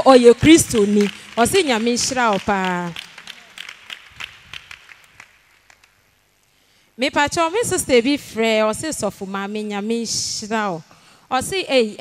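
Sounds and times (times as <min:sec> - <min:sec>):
people clapping: 0:00.1 - 0:06.2.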